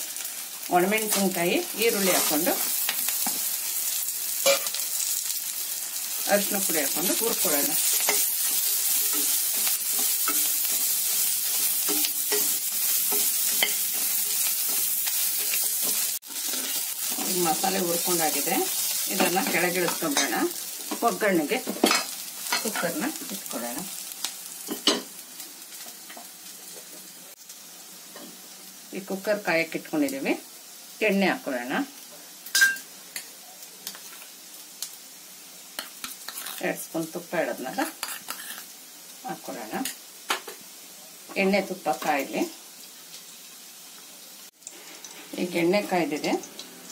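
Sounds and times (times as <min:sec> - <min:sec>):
food sizzling in oil: 0:00.0 - 0:46.9
metal spatula stirring: 0:06.9 - 0:17.8, 0:35.8 - 0:36.6, 0:38.0 - 0:38.6.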